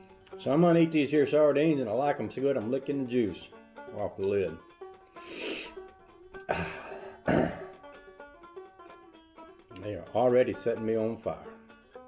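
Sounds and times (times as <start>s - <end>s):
banjo music: 0.0s - 12.0s
man's breathy mouth sounds: 5.1s - 5.9s, 6.5s - 7.6s.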